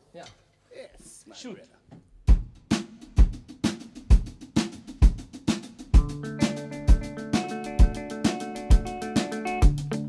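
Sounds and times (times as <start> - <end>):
drum kit playing groove: 2.3 - 10.0.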